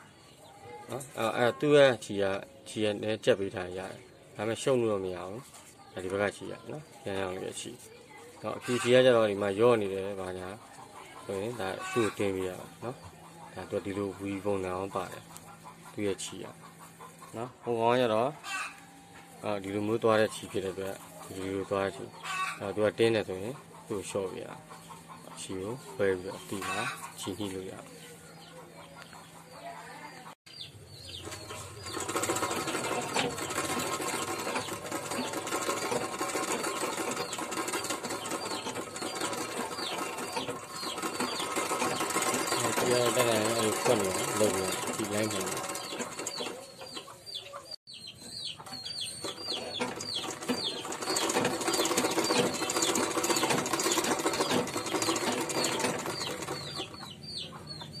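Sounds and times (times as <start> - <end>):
sewing machine stitching: 31.2 - 46.7, 49.2 - 57.0.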